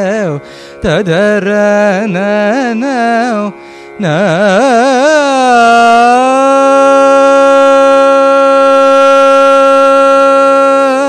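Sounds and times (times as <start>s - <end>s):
man singing a long note: 0.0s - 11.0s.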